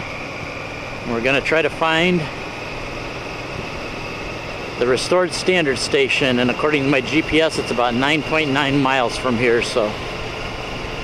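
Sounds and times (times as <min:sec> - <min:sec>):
motorcycle cruising: 0:00.0 - 0:11.0.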